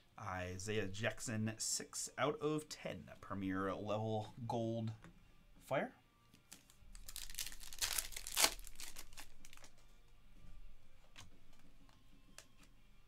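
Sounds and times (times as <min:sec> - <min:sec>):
foil wrapper crinkling and tearing: 0:06.5 - 0:09.7
cards rustling: 0:06.5 - 0:09.9.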